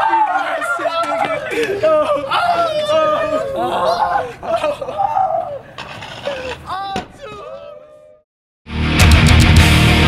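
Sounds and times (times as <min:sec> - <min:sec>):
young men laughing and calling out: 0:00.0 - 0:08.2.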